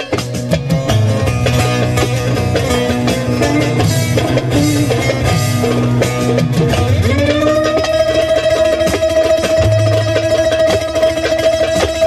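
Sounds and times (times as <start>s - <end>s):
fast strumming long-necked lute: 0.0s - 12.0s.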